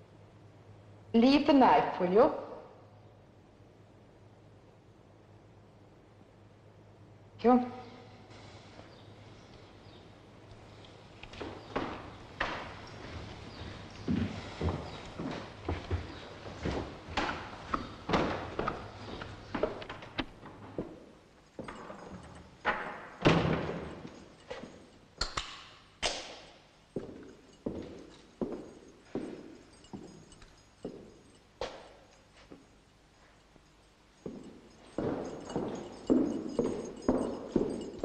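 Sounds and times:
sharp thuds and knocks echoing: 0:21.6 - 0:24.8.

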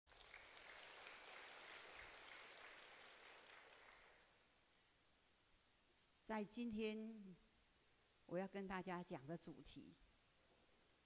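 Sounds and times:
soft hiss: 0:00.1 - 0:11.0.

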